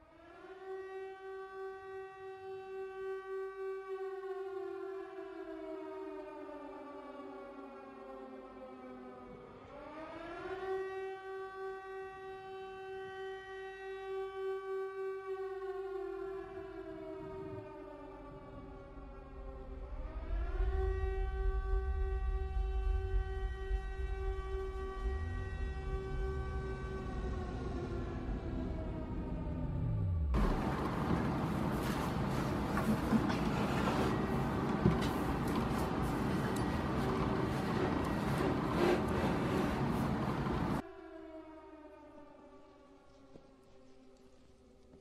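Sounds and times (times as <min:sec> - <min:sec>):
steady low drone: 0:15.7 - 0:42.0
deep rumble: 0:18.3 - 0:33.5.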